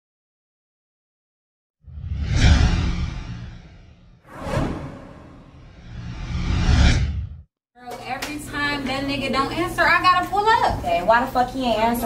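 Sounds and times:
cinematic whoosh: 1.9 - 7.5
deep rumble: 2.0 - 7.4.

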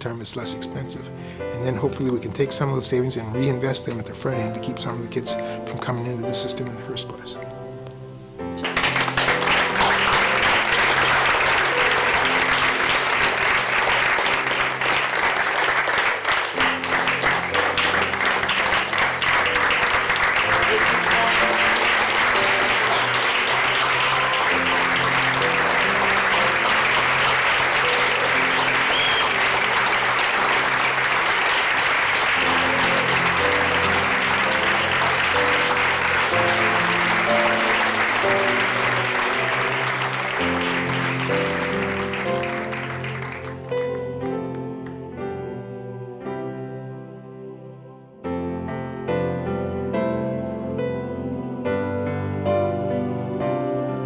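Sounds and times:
background music sustained notes: 0.0 - 54.0
audience applauding: 8.5 - 44.9.

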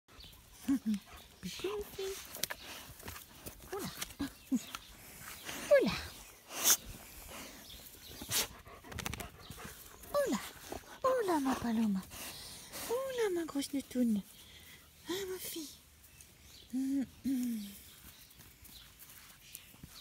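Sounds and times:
woman cooing and laughing: 16.7 - 17.8.

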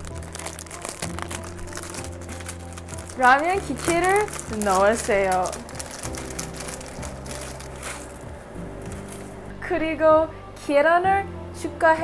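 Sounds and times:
plastic packet crinkling: 0.0 - 9.3
soft background music: 0.0 - 12.0.

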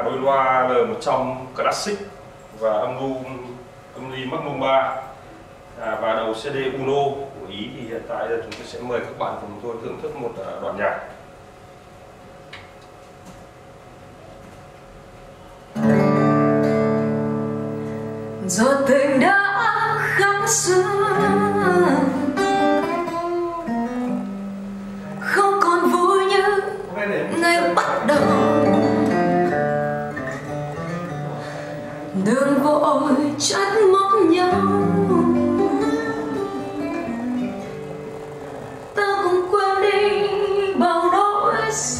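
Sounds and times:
strummed acoustic guitar chord: 15.8 - 25.4, 27.3 - 40.5
person singing: 18.6 - 23.4, 27.4 - 29.3, 32.2 - 37.2.

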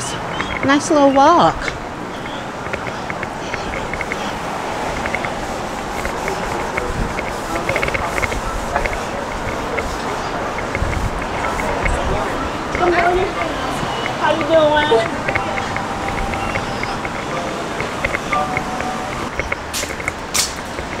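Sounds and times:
faint voices: 0.0 - 21.0
street noise: 0.0 - 21.0.

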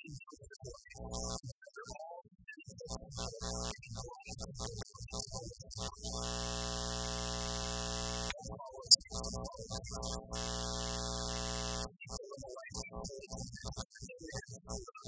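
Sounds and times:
man's voice: 0.0 - 6.2, 8.3 - 10.3, 12.1 - 15.0.

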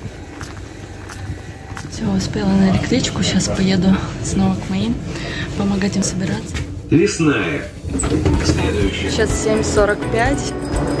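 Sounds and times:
soft footsteps on platform: 0.0 - 3.2
station background noise: 0.0 - 11.0.

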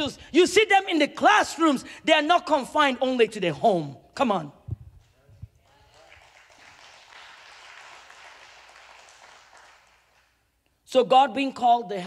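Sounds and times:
congregation applauding: 5.6 - 10.4.

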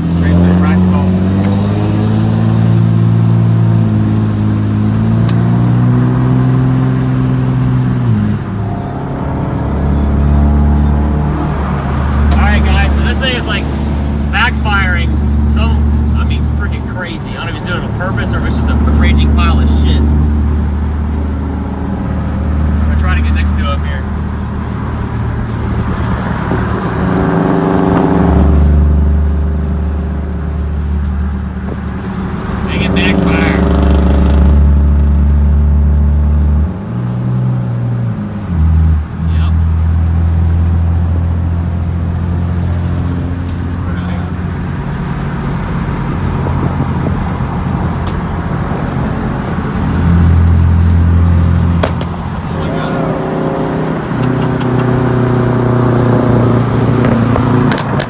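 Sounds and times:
diesel truck engine accelerating: 0.0 - 58.0.

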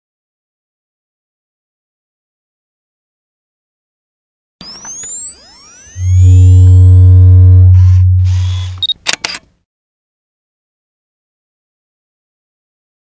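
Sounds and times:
sweeping synthetic tones: 4.6 - 8.9
short beep: 4.6 - 9.0
deep steady tone: 4.7 - 8.9
camera shutter clicks: 8.3 - 9.5.

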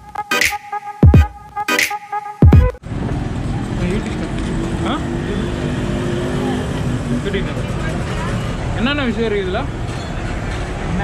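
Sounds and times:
street traffic: 2.6 - 11.0.

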